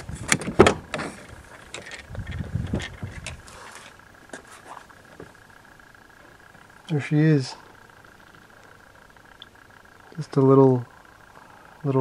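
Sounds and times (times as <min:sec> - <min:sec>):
soft rumbling: 0:00.0 - 0:12.0.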